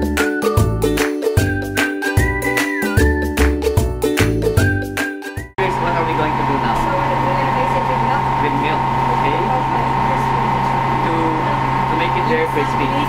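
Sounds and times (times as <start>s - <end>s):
ventilation hum: 5.6s - 13.0s.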